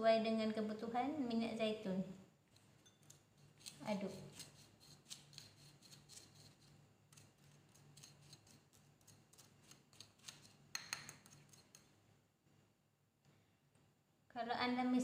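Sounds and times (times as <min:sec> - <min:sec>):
spoon scraping ceramic plate: 0:02.8 - 0:11.9.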